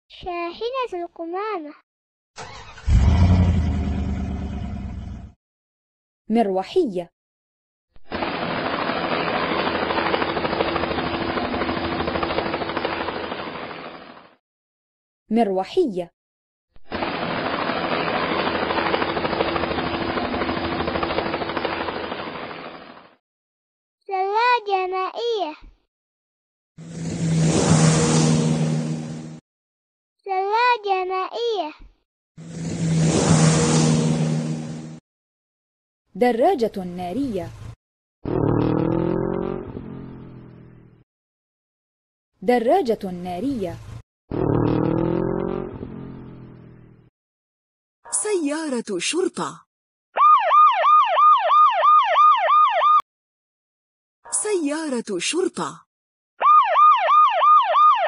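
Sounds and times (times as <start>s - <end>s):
motorcycle engine revving: 2.4s - 5.4s, 26.8s - 29.4s, 32.4s - 35.0s, 38.3s - 41.0s, 44.4s - 47.1s
helicopter engine noise: 8.0s - 14.3s, 16.8s - 23.2s, 26.8s - 29.4s, 32.4s - 35.0s
helicopter rotor chopping: 8.1s - 14.2s, 16.8s - 23.1s, 26.8s - 29.4s, 32.4s - 35.0s.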